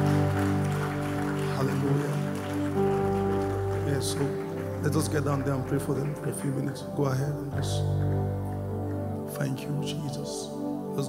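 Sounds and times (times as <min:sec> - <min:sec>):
held keyboard chords: 0:00.0 - 0:11.0.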